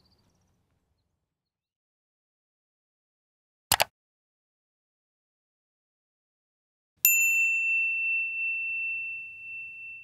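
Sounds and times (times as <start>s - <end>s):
bright bell ding: 7.1s - 10.0s.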